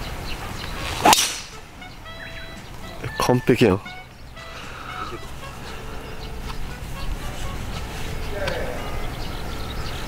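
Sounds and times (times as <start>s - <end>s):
golf club whoosh: 0.8s - 1.6s
golf club striking ball: 1.0s - 1.6s.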